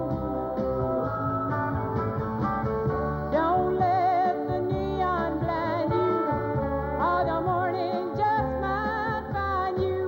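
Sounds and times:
country band backing: 0.0s - 10.0s
lead guitar: 0.0s - 10.0s.

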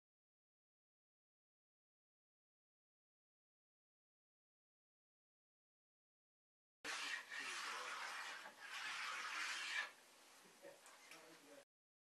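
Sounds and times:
cork scrubbing wax on ski: 6.9s - 10.0s.

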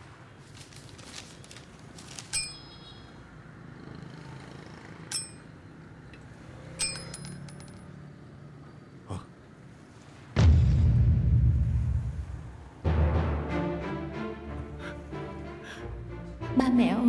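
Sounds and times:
metallic dings: 2.4s - 2.8s, 5.1s - 5.6s, 6.8s - 7.8s.

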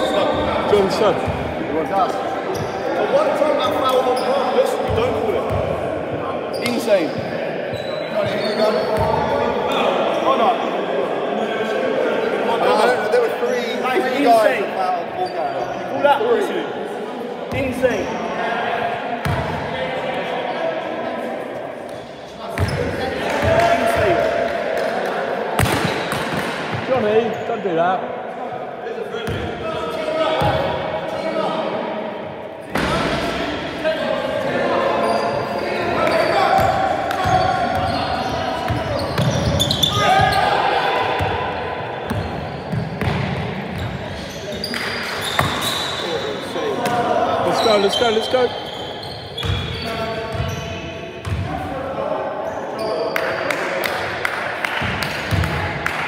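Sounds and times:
players' voices and shouts: 0.0s - 56.0s.

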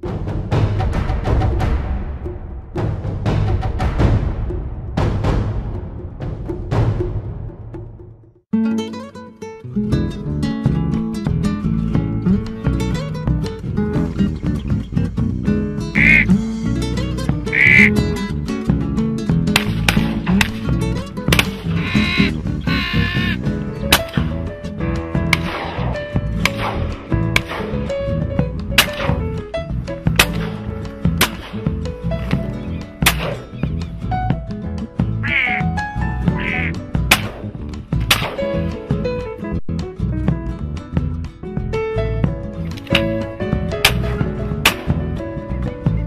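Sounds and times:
guitar music: 8.5s - 46.0s
duck quacks: 16.0s - 16.4s, 17.5s - 18.0s, 21.7s - 23.4s, 35.2s - 35.7s, 36.3s - 36.8s
shotgun shots: 25.4s - 27.8s, 28.8s - 29.2s, 30.2s - 30.6s, 33.0s - 33.5s, 37.1s - 38.5s.

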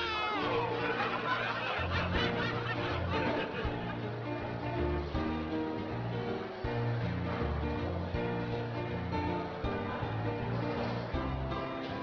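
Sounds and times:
people snickering and chuckling: 0.0s - 4.6s
background music: 0.0s - 12.0s.

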